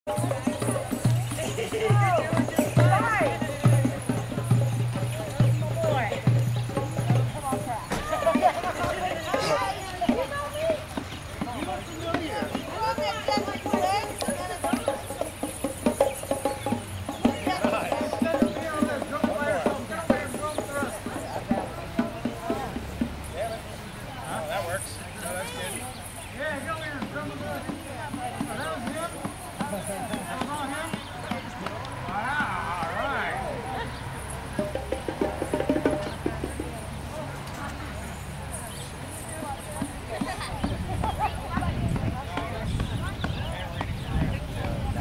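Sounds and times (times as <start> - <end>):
people talking and chattering: 0.0 - 45.0
voices calling: 0.0 - 45.0
hand drums beating: 0.1 - 23.6, 26.5 - 37.3, 39.0 - 45.0
hand drum strokes: 34.2 - 37.7.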